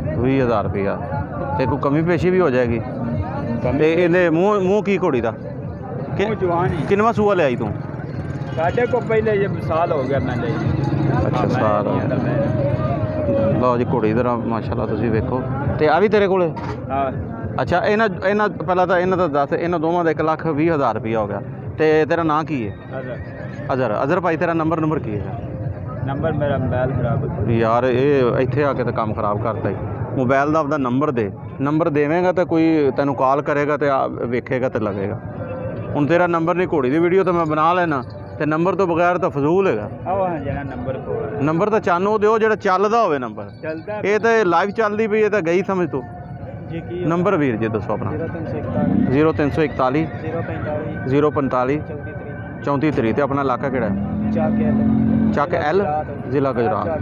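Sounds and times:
man talking: 0:00.0 - 0:05.4, 0:08.5 - 0:25.4, 0:26.0 - 0:35.2, 0:35.9 - 0:46.1, 0:46.7 - 0:57.0
horse whinnying: 0:23.1 - 0:24.0.

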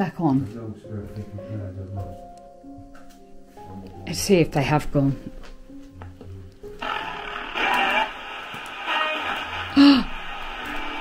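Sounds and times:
portable radio playing muffled music: 0:05.3 - 0:11.0.

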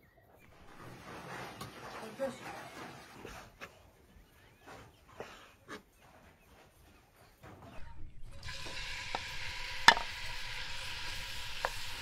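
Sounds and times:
chicken sizzling in hot pan: 0:08.4 - 0:12.0.

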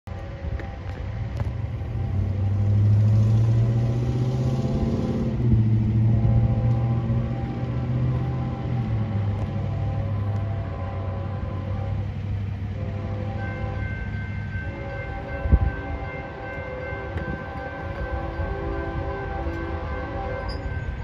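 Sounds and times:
diesel locomotives droning: 0:00.1 - 0:21.0.

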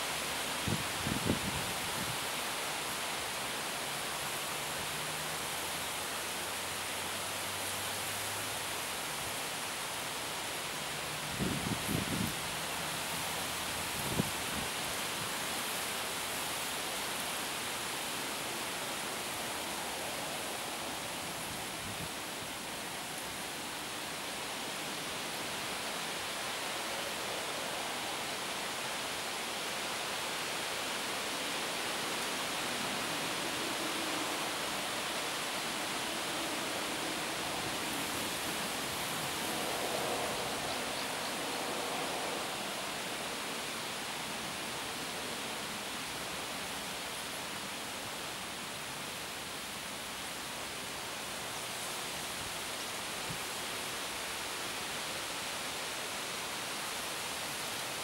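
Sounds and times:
river water rushing: 0:00.0 - 0:58.0.

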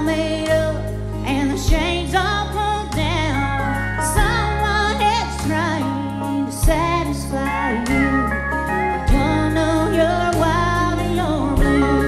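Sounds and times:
acoustic guitar: 0:00.0 - 0:12.0
backing band playing: 0:00.0 - 0:12.0
woman singing: 0:00.0 - 0:12.0.

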